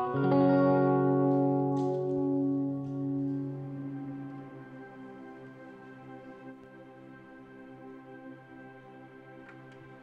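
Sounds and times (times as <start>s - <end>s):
band holding a chord: 0.0s - 5.4s.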